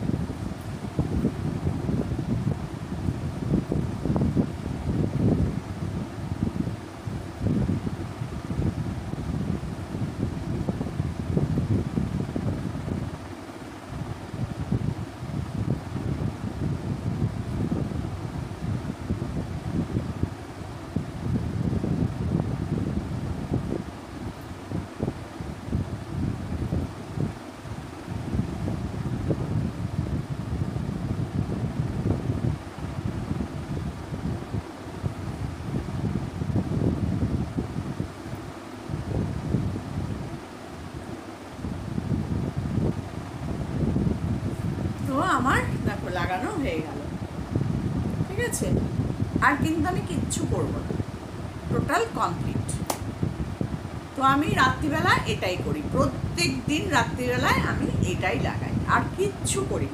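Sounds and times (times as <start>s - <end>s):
wind buffeting microphone: 0.0s - 59.9s.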